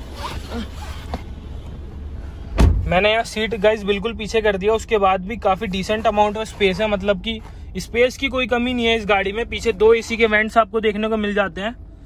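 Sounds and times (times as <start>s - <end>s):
rustling against upholstery: 0.0s - 10.5s
low steady rumble: 0.0s - 12.0s.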